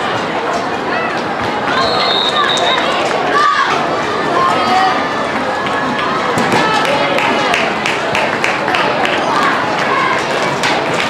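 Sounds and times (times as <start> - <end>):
chatter of young voices: 0.0 - 11.0.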